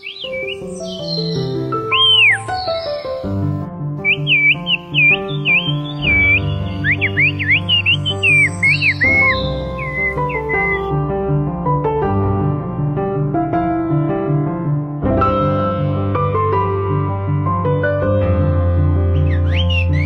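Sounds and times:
soft piano music: 0.0 - 20.0
high finger whistles: 4.0 - 10.9, 19.2 - 20.0.

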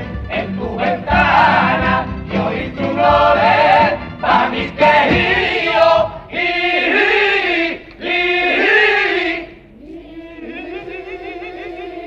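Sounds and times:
male chorus singing in harmony: 0.0 - 12.0.

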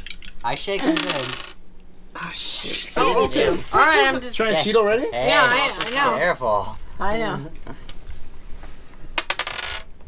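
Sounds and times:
dice clacking on table: 0.9 - 1.6, 5.7 - 6.0, 9.2 - 9.9.

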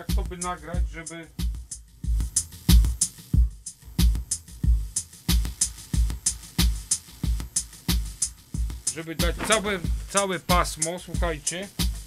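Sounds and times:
hi-hat ticks: 0.0 - 12.0
kick drum thumps: 0.2 - 12.0.

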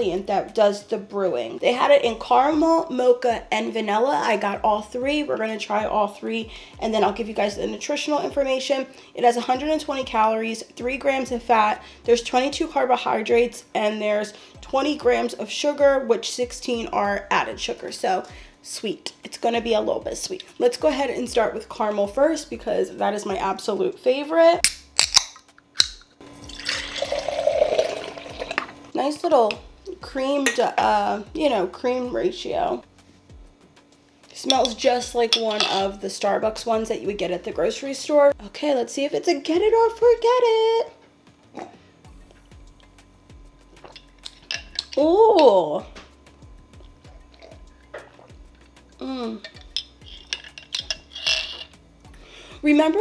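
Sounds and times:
liquid pouring into glass jar: 26.4 - 28.8
metal straw clinking against glass jar: 34.5 - 35.9, 43.8 - 45.6, 49.4 - 51.8.

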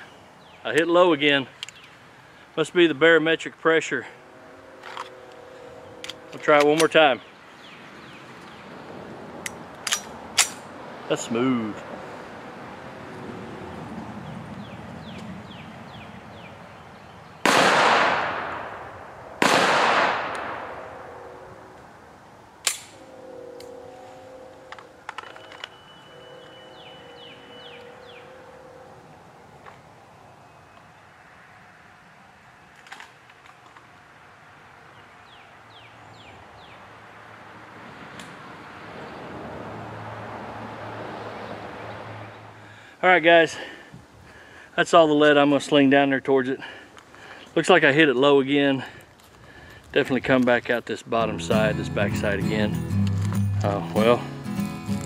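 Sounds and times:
pistol shots with long echo: 17.4 - 21.2.

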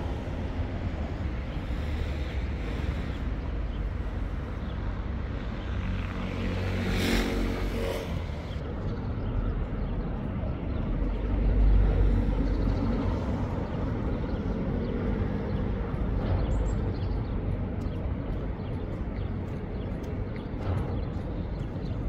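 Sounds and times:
steady low traffic rumble: 0.0 - 22.0
vehicle passing with tyre hiss: 5.9 - 8.6.

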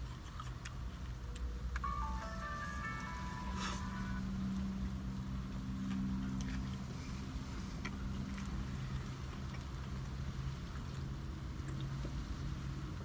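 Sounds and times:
short electronic jingle: 1.8 - 4.4
deeper steady tone: 1.8 - 8.2.

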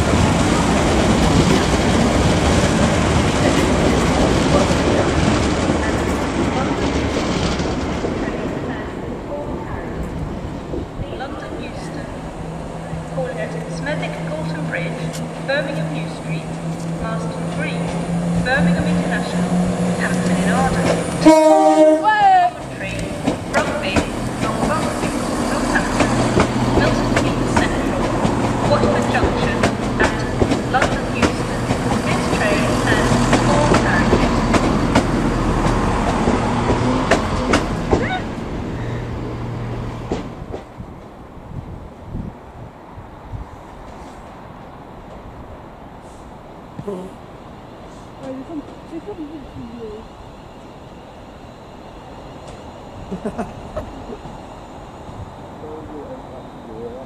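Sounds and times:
train wheel clatter: 0.0 - 41.2
diesel train engine hum: 0.0 - 57.0
loud train horn blast: 17.3 - 22.6.

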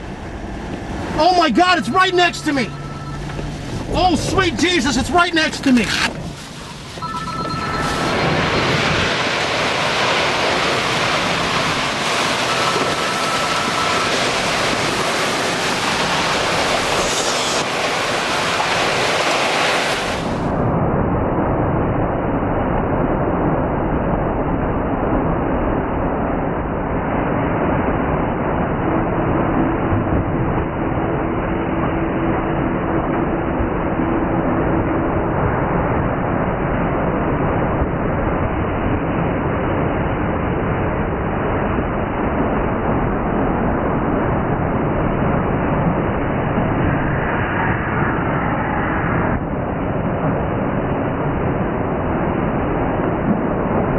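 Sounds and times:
wind roaring across microphone: 0.0 - 53.9.

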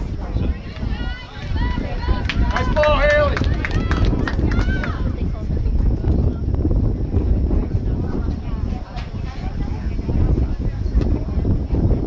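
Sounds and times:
people shouting: 0.8 - 5.1.

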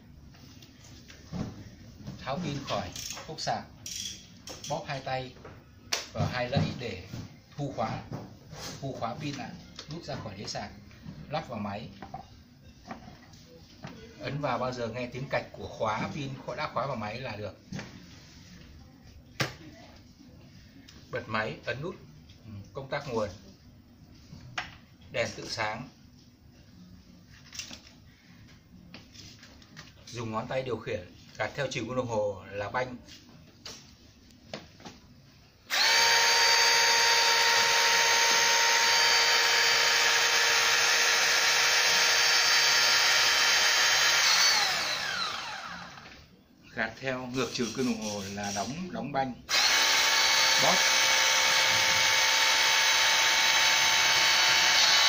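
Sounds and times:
hydraulic spreader motor whining: 35.7 - 46.2, 49.5 - 55.0.

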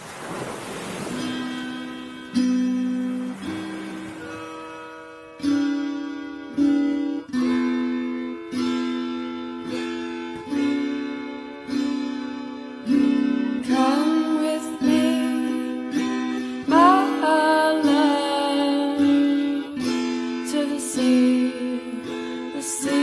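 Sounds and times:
wash of noise: 0.0 - 5.3
acoustic guitar music: 0.0 - 23.0.

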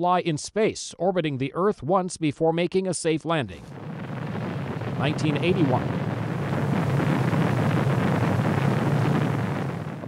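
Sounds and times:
rocket launch rumble: 3.5 - 10.0.

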